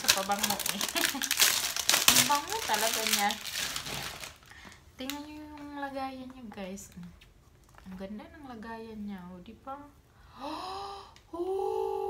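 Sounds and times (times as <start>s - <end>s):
packaging rustling: 0.0s - 8.0s.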